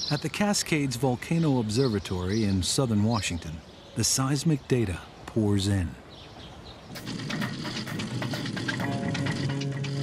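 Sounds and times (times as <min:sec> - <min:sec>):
music with quick ticking: 0:07.0 - 0:10.0.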